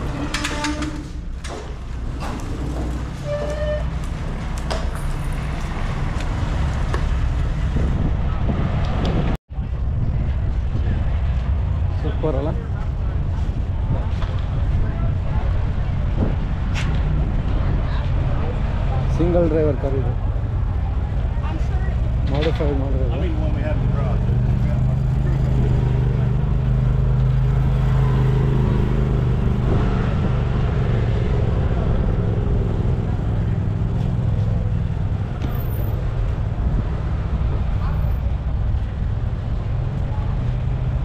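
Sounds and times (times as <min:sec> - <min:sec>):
voices talking: 0:17.4 - 0:28.6.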